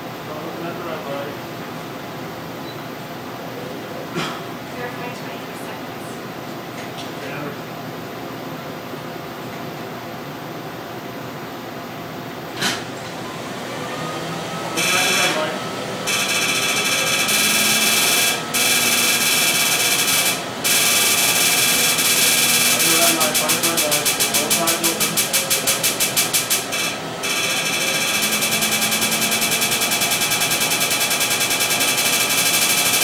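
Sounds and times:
laser rapid buzzing pulses: 0:14.7 - 0:33.0.

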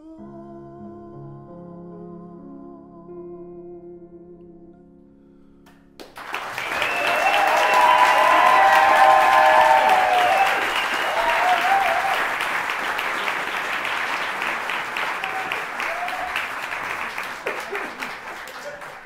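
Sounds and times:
audience applause: 0:06.0 - 0:19.0
voices cheering: 0:06.4 - 0:19.0.

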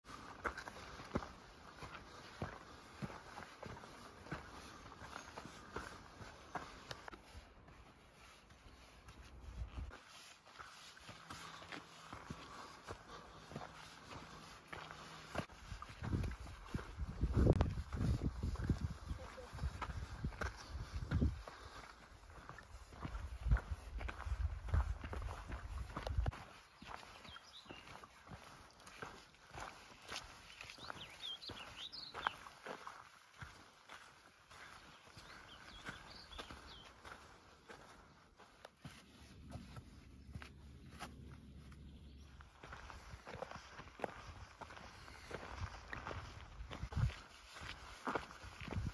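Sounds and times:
footsteps on rocky dirt trail: 0:00.0 - 0:48.9.

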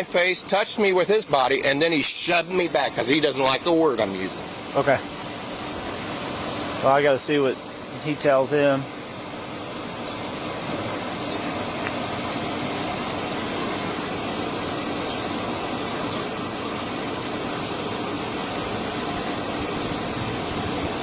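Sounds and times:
steady hiss: 0:00.0 - 0:21.0
vehicle engine idling: 0:00.0 - 0:21.0.

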